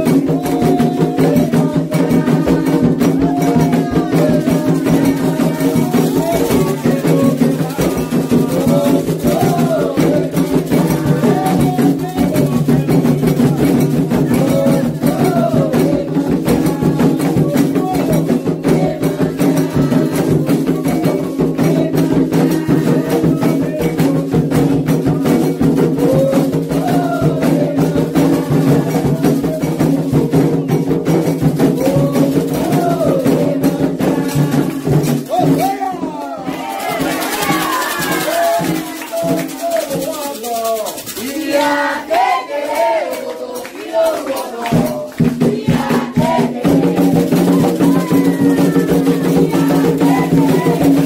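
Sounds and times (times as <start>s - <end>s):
person singing a chant: 0.0s - 31.0s, 31.6s - 40.1s, 41.1s - 51.0s
hand drums and percussion: 0.0s - 51.0s.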